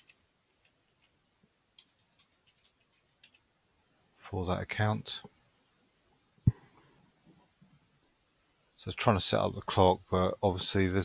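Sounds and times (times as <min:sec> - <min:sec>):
keyboard keys clicking: 0:01.8 - 0:03.4.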